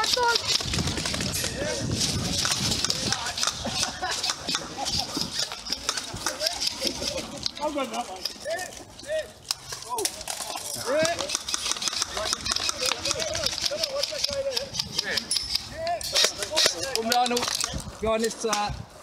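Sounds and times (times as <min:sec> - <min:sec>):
sharp clicks and rattles: 0:00.0 - 0:08.8, 0:09.4 - 0:18.7.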